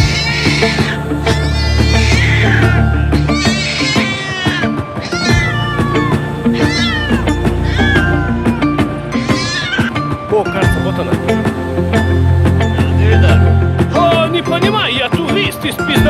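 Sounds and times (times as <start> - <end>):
cat meowing: 0.0 - 9.9
background music: 0.0 - 16.0.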